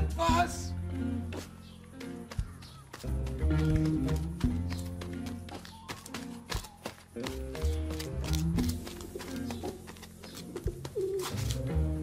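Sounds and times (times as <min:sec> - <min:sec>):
pigeons cooing: 0:10.6 - 0:11.6.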